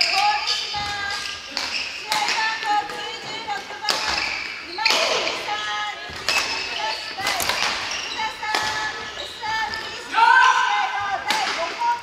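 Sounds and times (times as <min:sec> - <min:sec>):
rackets striking shuttlecock: 0:00.0 - 0:03.0, 0:06.1 - 0:09.0
shoes squeaking on wooden floor: 0:00.0 - 0:04.9, 0:06.0 - 0:10.1.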